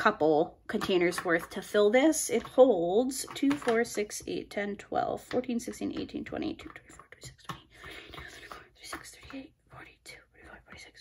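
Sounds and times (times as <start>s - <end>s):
fingertips tapping plastic containers: 0.0s - 11.0s
woman whispering: 6.4s - 11.0s.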